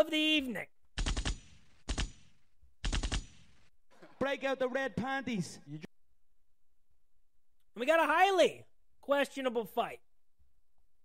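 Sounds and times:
machine-gun bursts: 1.0 - 3.7.

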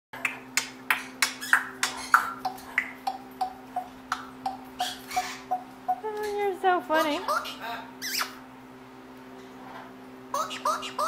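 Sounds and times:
faint steady hum: 0.2 - 11.0.

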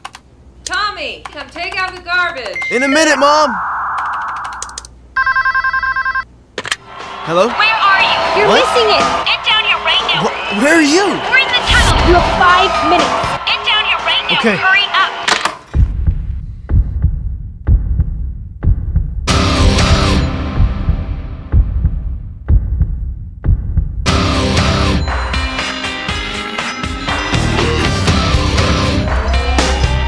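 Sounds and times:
telephone ringing: 2.5 - 6.3
deep throbbing pulse: 11.6 - 13.4, 15.8 - 24.8
heavy heartbeat-like thump: 11.7 - 12.5, 15.8 - 19.3, 20.4 - 24.1.

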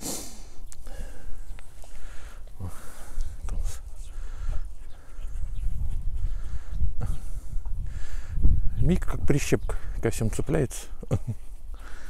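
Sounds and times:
puppy sniffing and snorting: 1.7 - 7.6.

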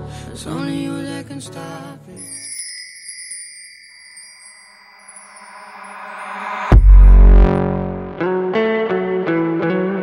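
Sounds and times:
bright chime shimmer: 2.2 - 7.6.

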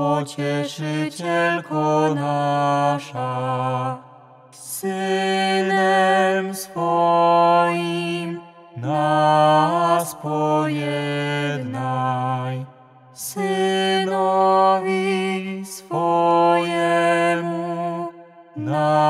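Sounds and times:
man and woman chanting prayer: 0.0 - 4.0, 4.6 - 19.0.

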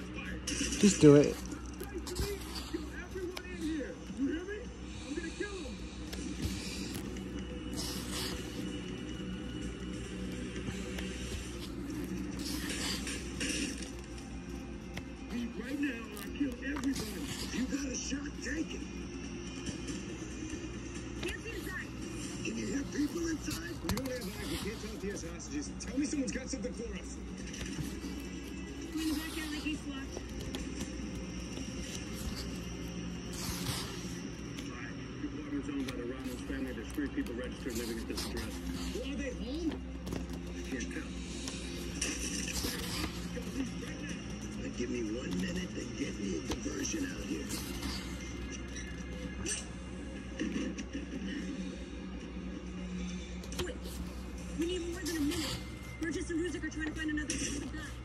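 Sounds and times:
book pages turning: 0.0 - 19.0, 19.6 - 49.8, 53.2 - 58.0
background music: 0.0 - 58.0
muffled voices: 0.0 - 58.0.

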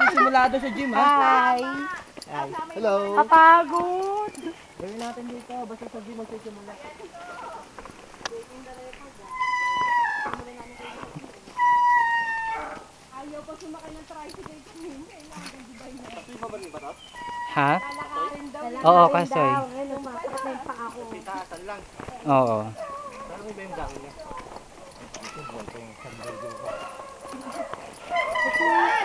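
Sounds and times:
footsteps on dirt trail: 0.0 - 29.0
high-pitched drawn-out cry: 9.3 - 10.4, 11.6 - 12.9, 28.1 - 29.0.

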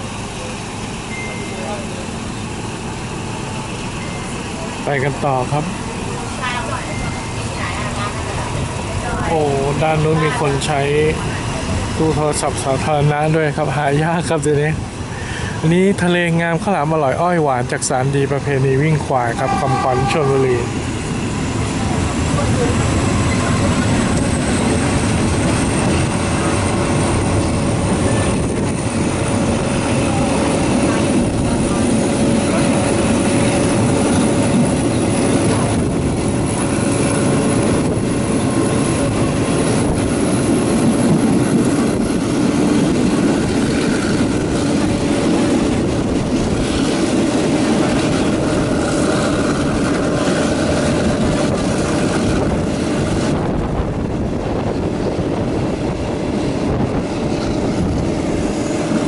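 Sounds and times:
train wheels and engine rumble: 0.0 - 59.0
wind: 0.0 - 59.0
thin high whine: 1.1 - 2.0.

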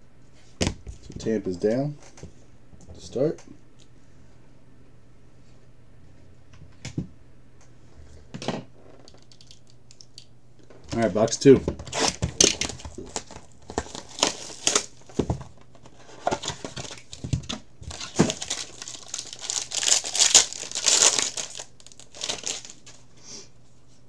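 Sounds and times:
plastic tearing: 11.8 - 23.0
plastic wrapping crinkling: 11.9 - 23.0.

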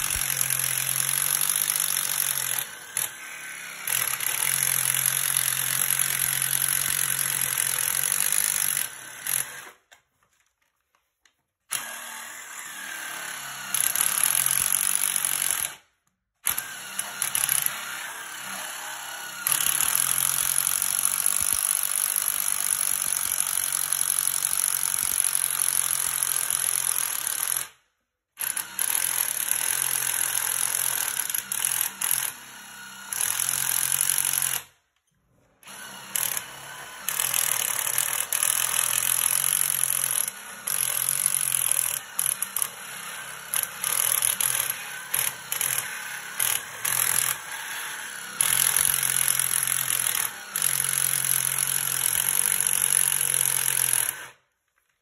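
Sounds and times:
cordless drill cutting plastic pipe: 0.0 - 10.0, 11.7 - 27.8, 28.4 - 34.8, 35.6 - 54.4.

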